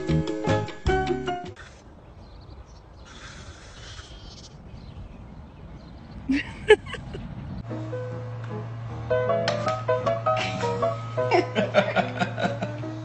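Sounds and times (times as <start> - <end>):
music: 0.0 - 1.6, 7.6 - 13.0.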